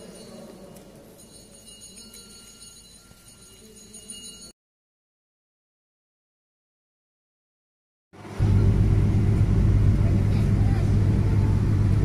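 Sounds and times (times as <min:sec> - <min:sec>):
church visitors ambience: 0:00.0 - 0:04.5
light bell-like ringing: 0:00.0 - 0:04.6.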